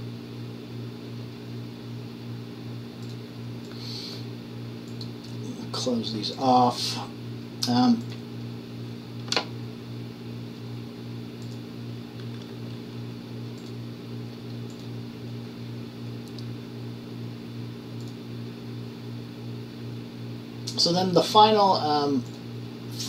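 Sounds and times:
fan humming: 0.0s - 23.0s
computer mouse clicks: 3.0s - 3.8s, 13.6s - 13.8s.

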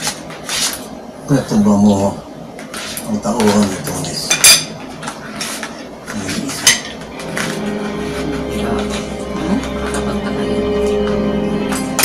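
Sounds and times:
cutlery clinking on plate: 4.3s - 5.2s
person humming: 7.6s - 11.9s.

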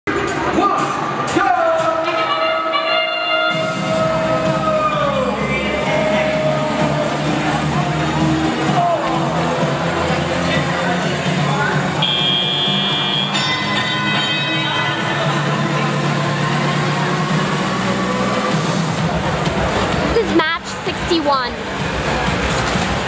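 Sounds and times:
music over loudspeakers: 0.1s - 23.0s
announcer's drawn-out call: 12.0s - 15.2s
high steady tone: 12.0s - 17.5s.

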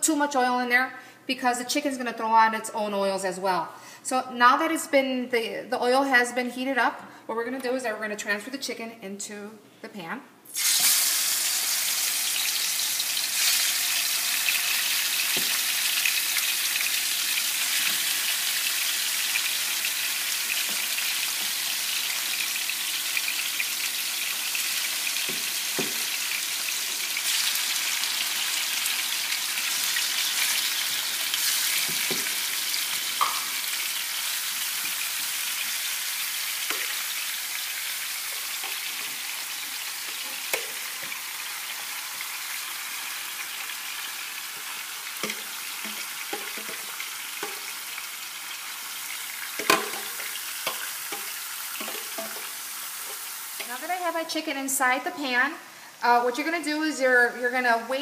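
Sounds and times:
chicken sizzling in frying pan: 10.5s - 54.4s.

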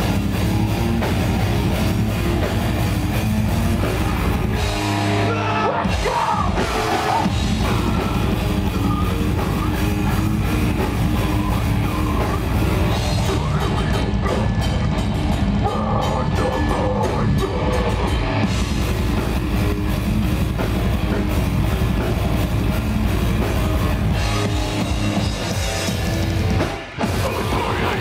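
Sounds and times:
distorted electric guitars: 0.0s - 28.0s
pounding drum kit: 0.0s - 28.0s.

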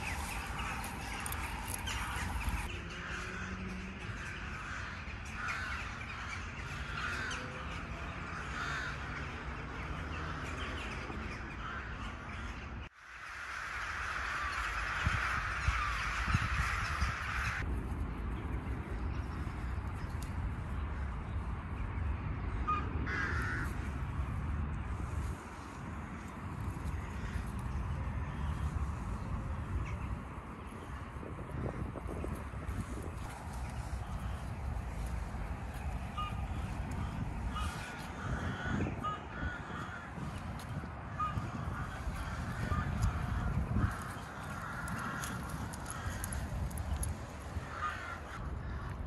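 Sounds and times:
steady low rumble: 0.0s - 7.2s, 13.6s - 49.0s
crow cawing: 2.9s - 10.6s, 13.5s - 17.6s, 22.7s - 23.8s, 36.1s - 49.0s.

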